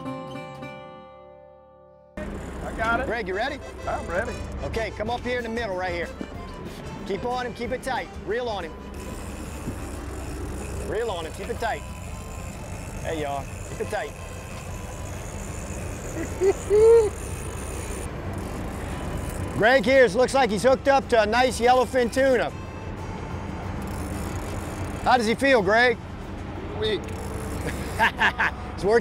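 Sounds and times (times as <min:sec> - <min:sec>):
wind: 0:02.1 - 0:29.0
boat engine humming: 0:02.2 - 0:29.0
water noise: 0:08.7 - 0:20.8
sea noise: 0:08.8 - 0:20.9.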